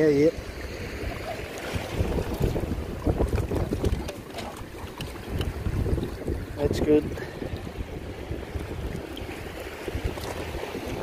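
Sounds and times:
choppy river water: 0.0 - 11.0
wind buffeting microphone: 0.0 - 11.0.

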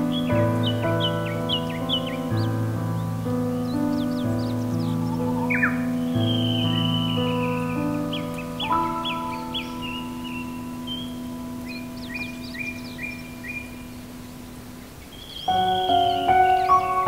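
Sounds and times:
soft solo piano chords: 0.0 - 17.0
songbirds chirping: 0.0 - 17.0.

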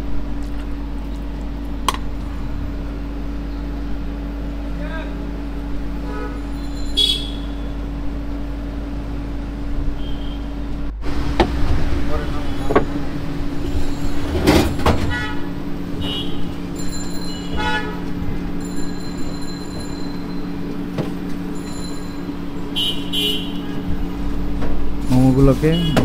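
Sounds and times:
steady low hum: 0.0 - 26.0
street traffic: 0.0 - 26.0
vehicle horn toots: 6.0 - 7.8, 9.9 - 10.6, 15.0 - 16.6, 17.4 - 18.5, 22.5 - 24.0, 25.5 - 26.0.

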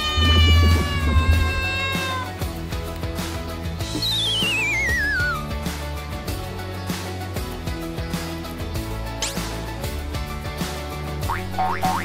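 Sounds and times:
background music with steady beat: 1.6 - 12.0
descending comic whistle effect: 3.9 - 5.4.

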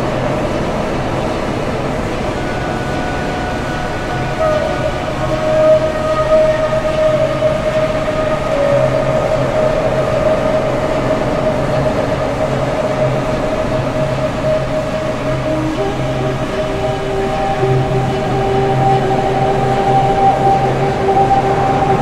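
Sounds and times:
high synth drone: 0.0 - 22.0
hissing rumbling wash: 0.0 - 22.0.

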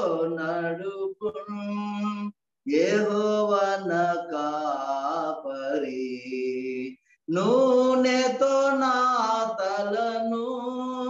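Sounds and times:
man singing a hymn: 0.0 - 11.0.

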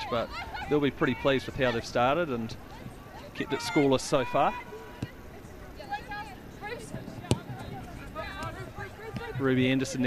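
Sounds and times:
football being kicked: 7.2 - 9.4.

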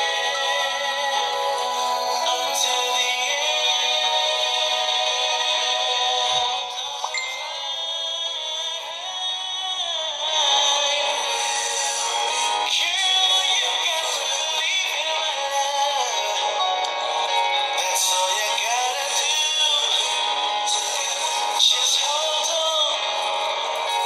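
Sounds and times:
backing music: 0.0 - 24.0
man singing: 0.0 - 24.0.

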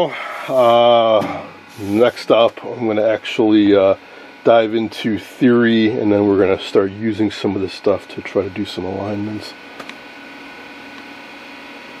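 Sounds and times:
high whining tones: 0.0 - 11.6
electronic equipment hum and hiss: 0.0 - 12.0.

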